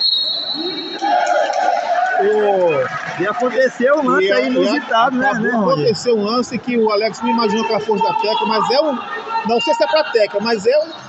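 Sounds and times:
high whistle tone: 0.0 - 1.2
raised voices echoing: 0.6 - 11.0.

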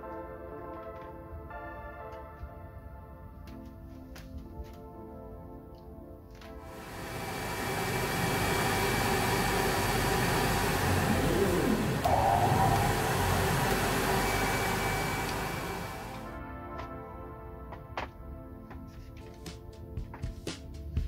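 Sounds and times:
background music: 0.0 - 8.3, 10.8 - 21.0
laser cutter air assist and fans: 6.6 - 16.3.

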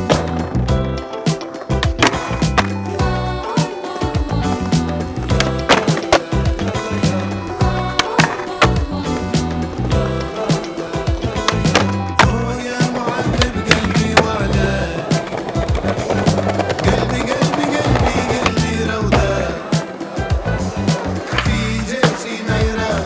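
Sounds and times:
skateboard clacks: 0.0 - 3.0, 4.5 - 9.2, 10.4 - 23.0
music with heavy bass: 0.0 - 23.0
skateboard wheels rolling: 0.0 - 23.0.

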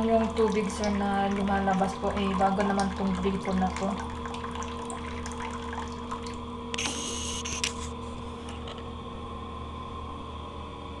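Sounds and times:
water trickling into sink: 0.0 - 7.2
steady background hum: 0.0 - 11.0.

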